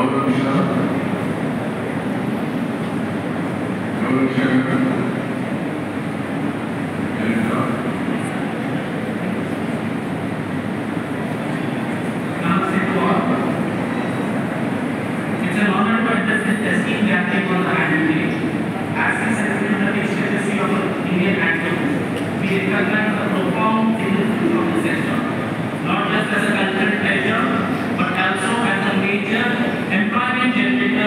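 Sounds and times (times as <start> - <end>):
speech over loudspeakers: 0.0 - 1.2, 3.9 - 5.3, 7.1 - 8.7, 12.2 - 13.7, 15.3 - 31.0
rumbling din of a large hall: 0.0 - 31.0.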